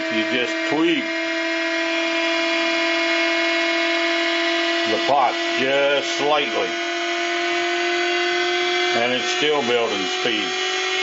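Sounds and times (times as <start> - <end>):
pulse motor whining: 0.0 - 11.0.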